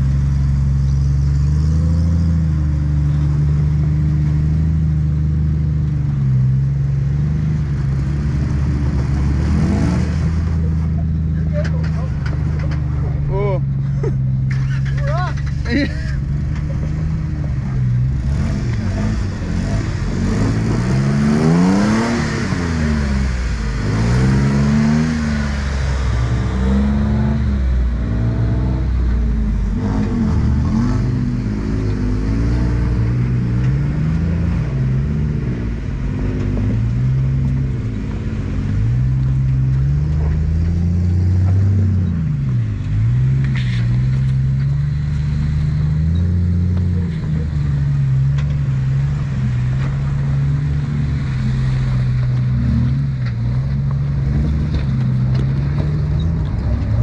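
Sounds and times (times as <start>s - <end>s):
off-road engine revving: 0.0s - 57.0s.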